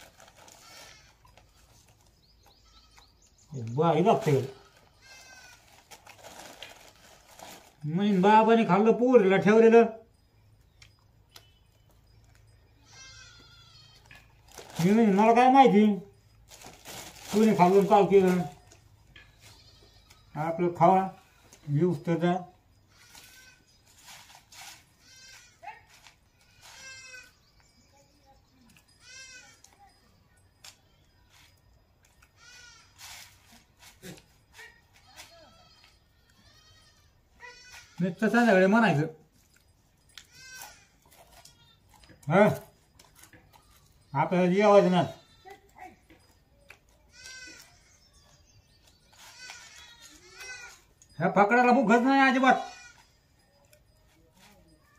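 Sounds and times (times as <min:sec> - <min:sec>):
goat bleating: 0:02.5 - 0:03.2, 0:04.0 - 0:05.9, 0:12.8 - 0:14.4, 0:19.2 - 0:21.6, 0:22.9 - 0:23.8, 0:24.9 - 0:27.4, 0:28.9 - 0:29.8, 0:32.2 - 0:38.8, 0:40.2 - 0:46.3, 0:46.9 - 0:53.4
soft rustling: 0:23.0 - 0:27.4.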